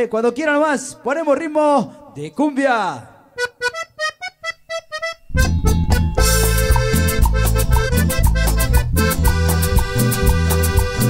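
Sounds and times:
accordion-like solo melody: 3.4 - 11.0.

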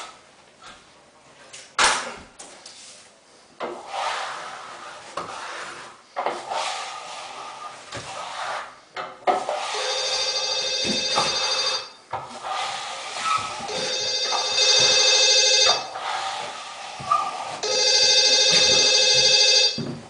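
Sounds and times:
phone ringing: 9.6 - 12.0, 13.7 - 16.0, 17.6 - 20.0.

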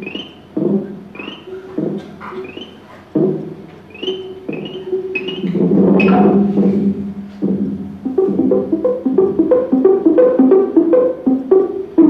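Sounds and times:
high electronic chirp: 0.0 - 2.9, 3.9 - 6.6
short synthesizer notes: 0.0 - 12.0.

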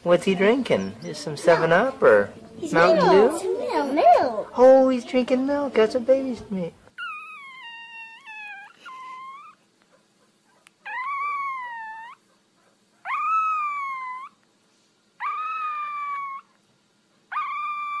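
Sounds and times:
puppy howling: 7.0 - 9.6, 10.4 - 12.4, 13.0 - 14.4, 15.2 - 16.6, 17.3 - 18.0.

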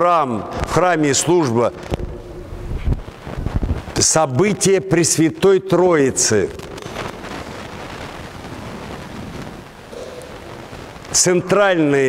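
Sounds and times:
wind noise on microphone: 1.7 - 4.1, 6.5 - 11.2.

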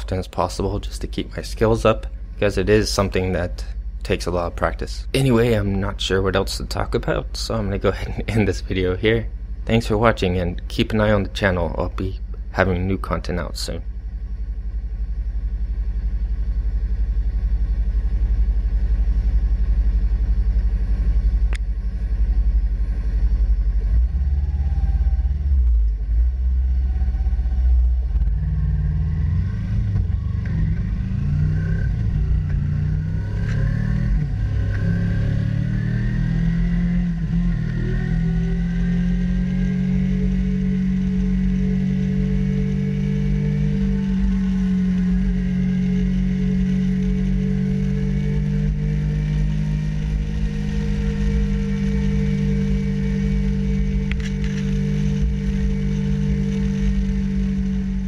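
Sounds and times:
motorcycle engine shifting gears: 16.2 - 58.0.

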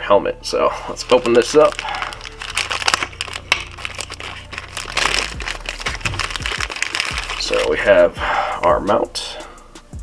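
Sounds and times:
background music: 0.0 - 10.0
plastic bag crinkling: 0.9 - 7.9.

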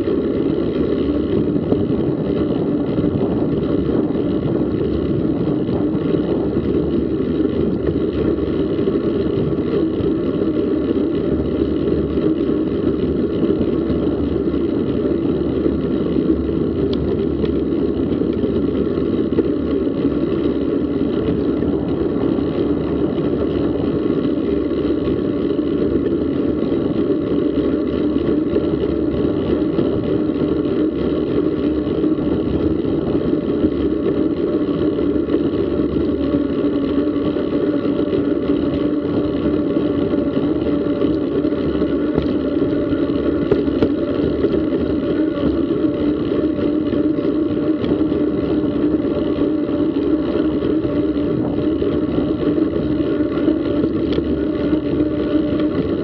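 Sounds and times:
bicycle tyre noise: 0.0 - 56.0.

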